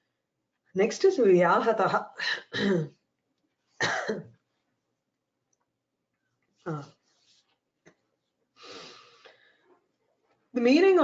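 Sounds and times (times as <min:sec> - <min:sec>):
woman coughing: 0:02.4 - 0:03.0, 0:03.8 - 0:04.3.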